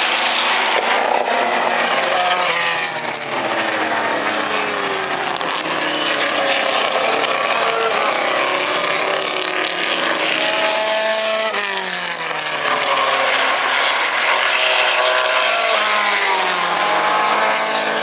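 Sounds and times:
racing car engines passing: 0.0 - 18.0.

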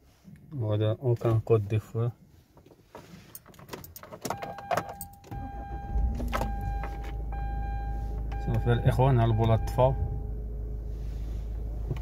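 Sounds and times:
car engine starting and idling: 2.9 - 12.0
keys rattling: 3.3 - 5.3.

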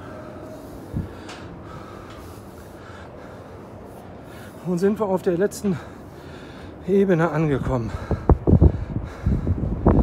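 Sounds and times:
wind buffeting microphone: 0.8 - 2.2, 7.0 - 10.0.

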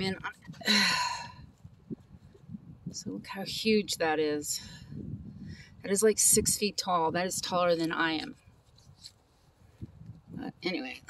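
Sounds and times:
rustles: 7.6 - 10.3.

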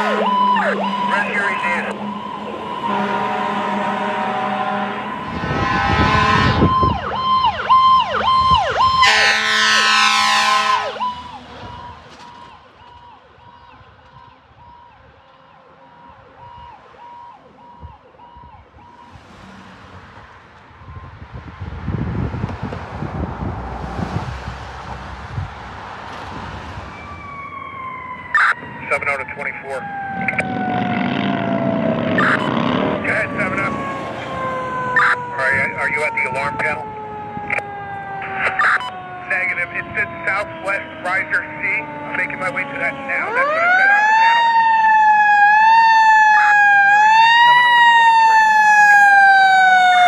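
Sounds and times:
traffic rumbling past: 0.0 - 13.4, 14.4 - 50.0
siren with falling wails: 0.0 - 19.2, 20.7 - 22.3, 26.4 - 50.0
fire truck electronic siren: 0.0 - 19.4, 20.6 - 22.3, 26.3 - 50.0.

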